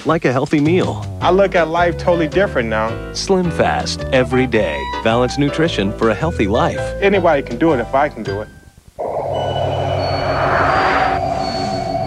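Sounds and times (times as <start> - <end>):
rushing noise: 9.0 - 12.0.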